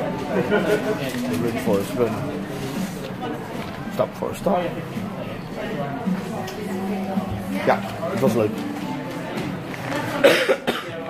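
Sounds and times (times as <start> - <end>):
person coughing: 10.2 - 11.0.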